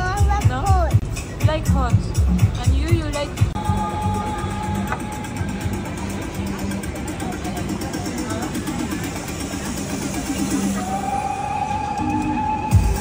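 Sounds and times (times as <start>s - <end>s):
background music with held notes: 0.0s - 13.0s
indistinct chatter of voices: 0.0s - 13.0s.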